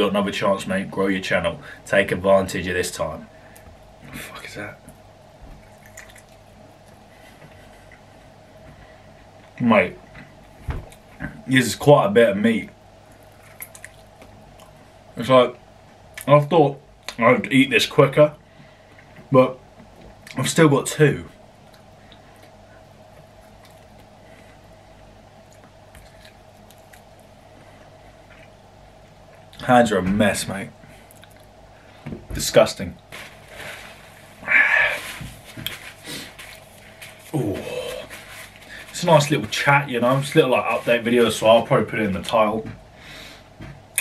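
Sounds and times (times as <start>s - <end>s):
faint steady hum: 0.0s - 44.0s
wet chewing: 5.6s - 8.0s, 13.2s - 14.8s, 23.2s - 24.1s, 25.4s - 27.3s.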